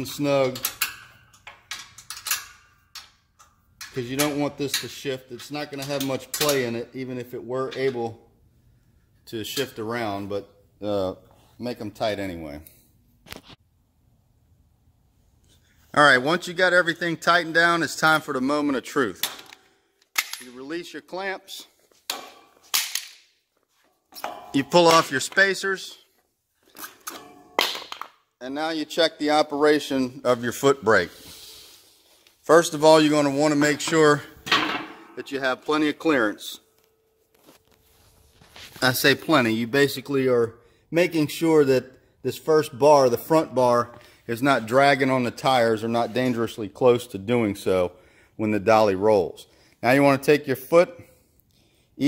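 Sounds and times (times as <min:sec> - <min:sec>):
soft handling noise: 0:36.6 - 0:39.5.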